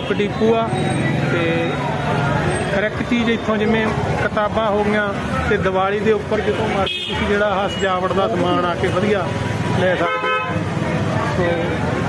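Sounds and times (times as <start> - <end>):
busy street hubbub: 0.0 - 12.0
voices: 0.0 - 12.0
vehicle horn honk: 10.0 - 10.6.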